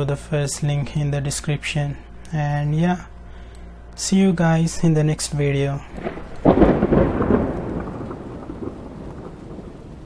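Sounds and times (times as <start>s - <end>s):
low rumbling: 1.4s - 10.0s
rain-like hiss: 5.8s - 10.0s.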